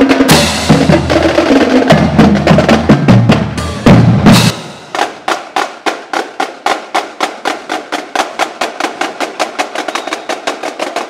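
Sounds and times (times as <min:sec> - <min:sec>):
marching snare drums: 0:00.0 - 0:11.0.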